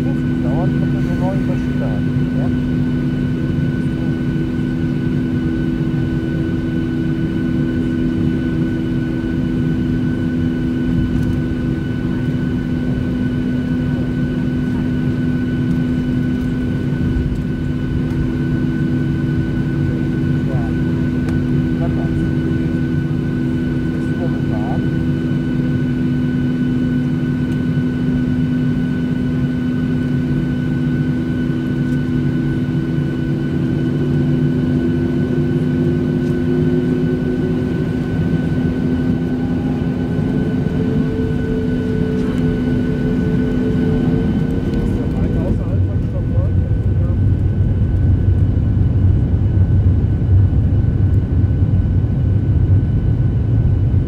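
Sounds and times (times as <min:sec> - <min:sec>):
jet engine cabin rumble: 0:00.0 - 0:54.0
jet engine whine: 0:00.0 - 0:54.0.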